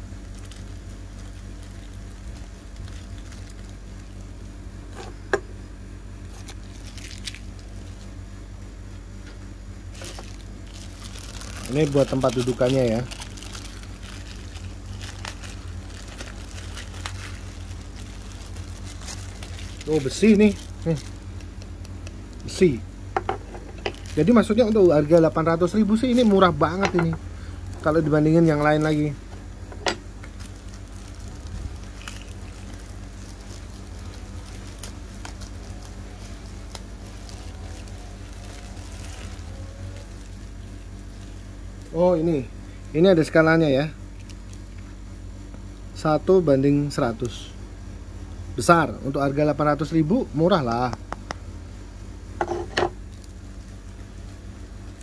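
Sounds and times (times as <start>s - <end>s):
plastic bag crinkling: 0.0s - 4.4s, 6.2s - 8.2s, 9.8s - 22.8s, 23.6s - 41.9s, 44.0s - 45.0s, 53.0s - 54.2s
plastic packaging rustling: 0.0s - 4.4s, 6.2s - 8.2s, 9.8s - 22.8s, 23.6s - 41.8s, 44.0s - 45.0s, 52.9s - 54.2s
steady low hum: 0.0s - 55.0s.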